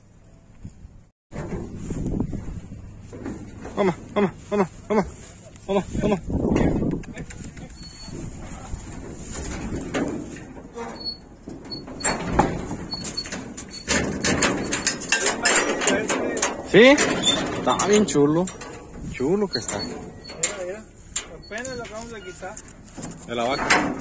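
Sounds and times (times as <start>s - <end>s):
cattle knocking in metal trailer: 1.3s - 4.4s, 7.6s - 24.0s.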